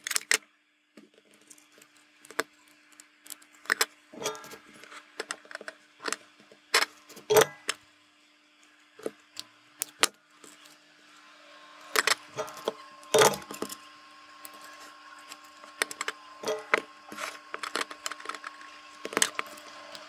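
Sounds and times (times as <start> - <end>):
faint steady hum: 0.0 - 20.0
clicks and taps of small parts: 1.2 - 6.2.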